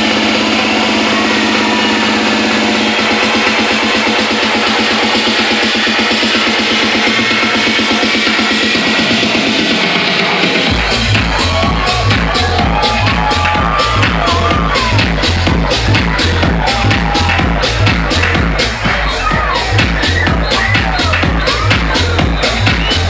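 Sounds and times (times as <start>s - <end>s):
heavy bass line: 0.0s - 23.0s
loud techno music: 0.0s - 23.0s.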